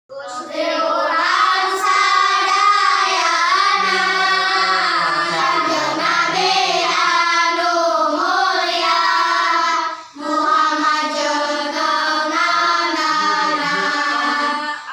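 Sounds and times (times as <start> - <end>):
children singing in unison: 0.2 - 14.9.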